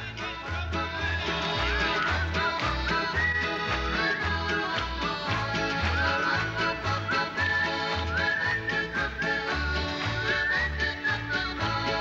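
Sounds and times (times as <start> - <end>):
accordion chords: 0.0 - 12.0
whistled melody: 0.8 - 12.0.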